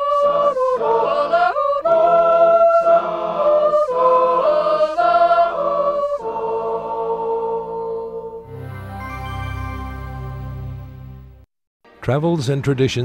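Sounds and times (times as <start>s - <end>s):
women singing a cappella: 0.0s - 8.4s.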